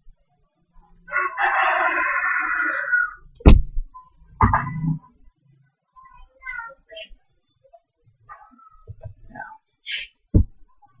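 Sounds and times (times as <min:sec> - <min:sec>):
sharp thump: 0:03.4 - 0:03.8.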